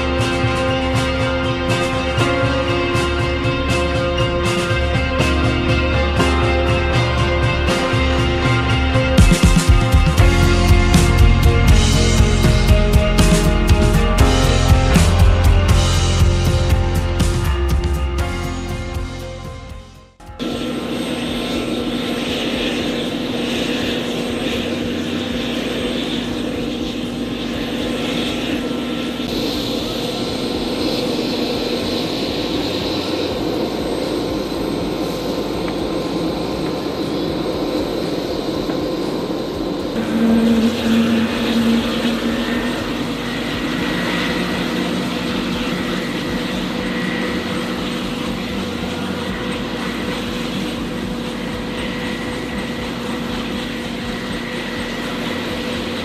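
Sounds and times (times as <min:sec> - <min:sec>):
helicopter turbine whine: 0:00.0 - 0:56.0
loud low tone: 0:40.0 - 0:53.6.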